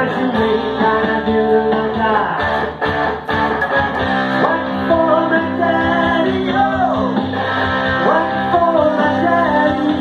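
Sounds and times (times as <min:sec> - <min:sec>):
electric guitar through a pa: 0:00.0 - 0:10.0.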